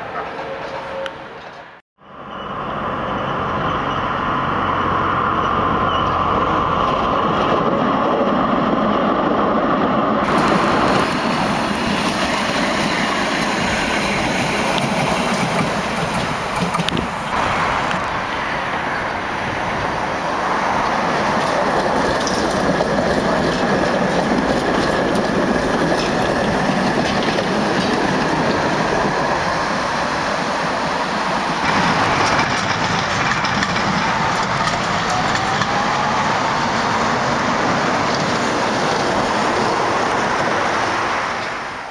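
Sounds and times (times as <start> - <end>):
tram wheels rumbling on rails: 0.0 - 41.9
wheels clacking over rail joints: 10.2 - 41.8.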